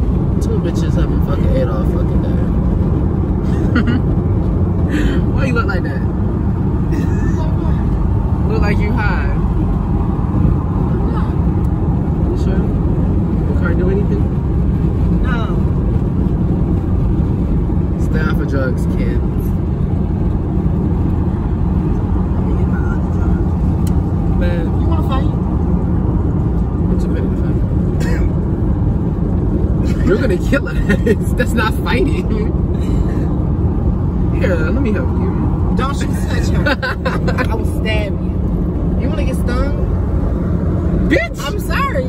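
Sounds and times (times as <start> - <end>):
car cabin road and engine rumble: 0.0 - 42.0
person laughing: 3.4 - 4.1, 29.8 - 31.3, 36.5 - 37.6.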